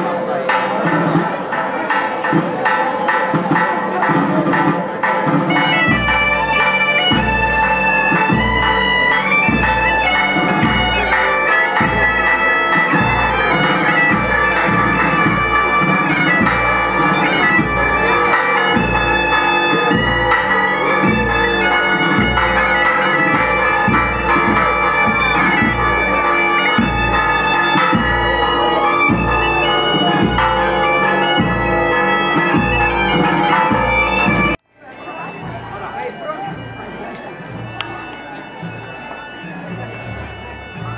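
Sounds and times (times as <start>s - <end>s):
drum beat: 0.5s - 34.6s
bagpipes playing lively melody: 5.0s - 40.9s.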